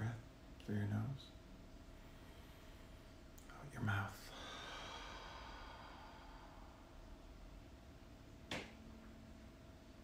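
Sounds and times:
man exhaling slowly: 0:04.3 - 0:07.1.

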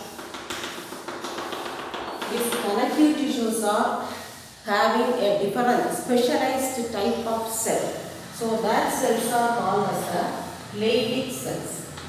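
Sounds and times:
chalk scraping on chalkboard: 0:00.0 - 0:03.1
sharp chalk taps: 0:00.0 - 0:03.1.

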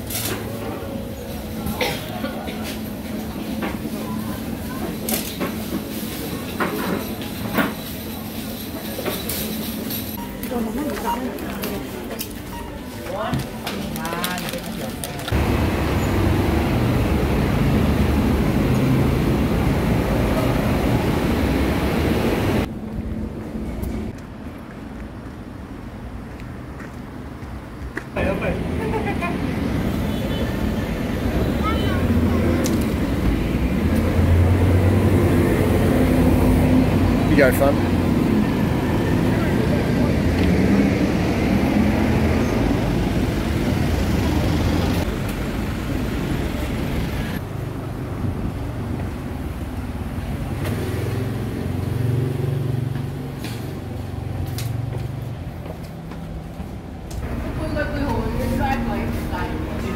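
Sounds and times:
traffic rumble: 0:00.0 - 0:59.9.

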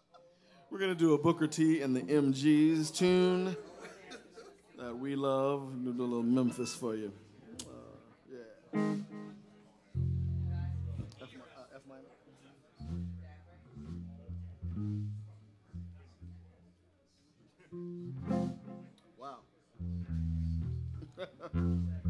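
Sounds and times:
electric bass guitar low notes: 0:08.8 - 0:11.2, 0:12.8 - 0:16.7, 0:17.8 - 0:18.9, 0:19.8 - 0:22.0
electric guitar plucks: 0:08.8 - 0:11.2, 0:12.8 - 0:16.6, 0:17.8 - 0:19.0, 0:19.8 - 0:22.0.

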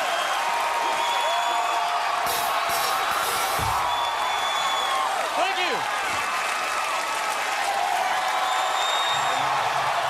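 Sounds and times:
audience cheering and applauding: 0:00.0 - 0:10.0.

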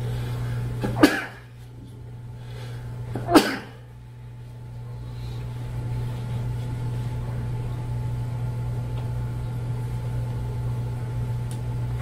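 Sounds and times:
low room hum: 0:00.0 - 0:12.0
person coughing: 0:00.9 - 0:01.5, 0:03.2 - 0:03.9.

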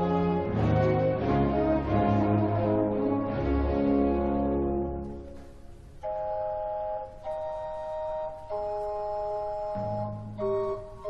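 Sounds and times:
chamber organ chords: 0:00.0 - 0:11.0.

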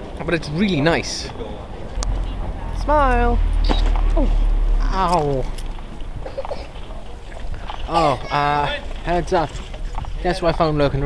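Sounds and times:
wind rumble on microphone: 0:08.7 - 0:11.0.

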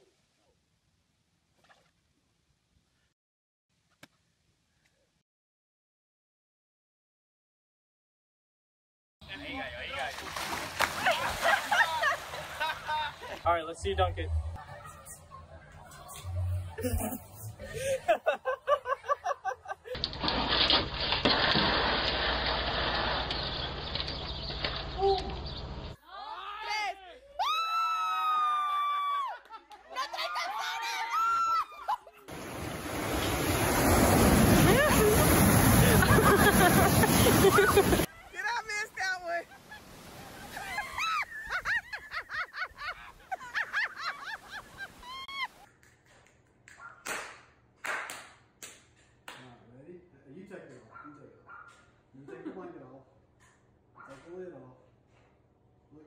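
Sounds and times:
churning water splashing: 0:10.0 - 0:13.4, 0:20.0 - 0:24.9, 0:32.3 - 0:38.1.

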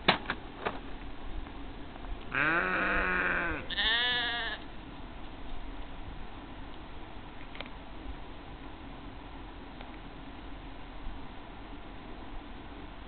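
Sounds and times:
sheep bleating: 0:02.3 - 0:04.6.

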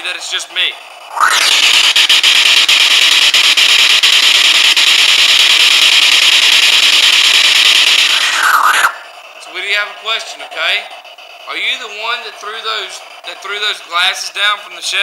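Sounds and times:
rapid clicks: 0:01.0 - 0:14.4
radio static hissing: 0:01.1 - 0:10.2.

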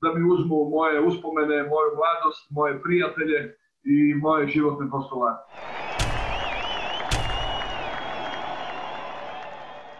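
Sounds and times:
crowd-like noise: 0:05.6 - 0:09.9
wavering high whistle: 0:05.6 - 0:09.9
sharp hits: 0:05.9 - 0:08.1.

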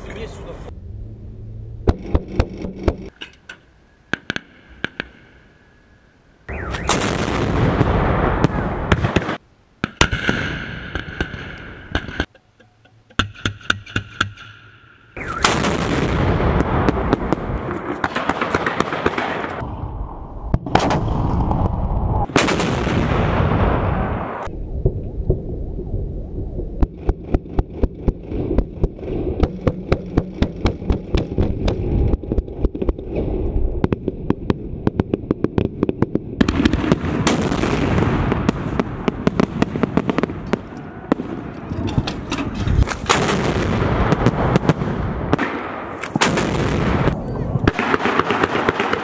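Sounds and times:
howitzer blasts with rolling echo: 0:03.8 - 0:12.3, 0:14.6 - 0:32.3, 0:43.0 - 0:49.0
fireworks popping and crackling: 0:15.2 - 0:19.7, 0:22.2 - 0:23.6, 0:26.8 - 0:49.0.

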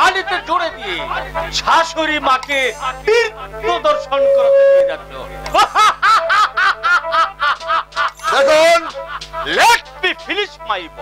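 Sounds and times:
person laughing over loudspeakers: 0:05.5 - 0:09.8.

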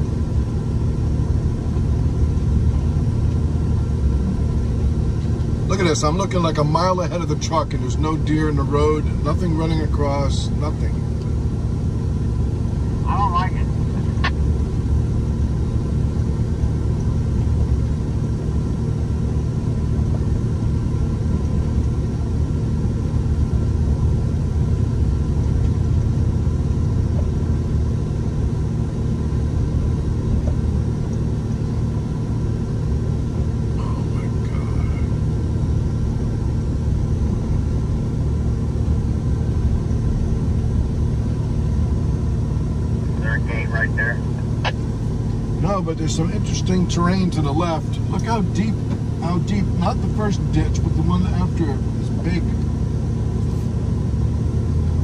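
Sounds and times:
truck engine and road noise: 0:00.0 - 0:55.0.

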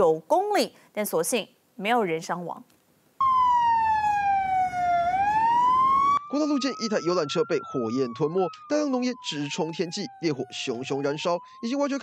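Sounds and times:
emergency siren wailing: 0:03.2 - 0:12.0.

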